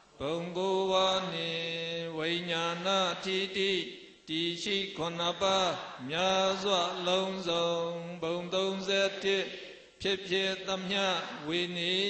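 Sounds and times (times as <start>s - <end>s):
person chanting: 0.0s - 12.0s.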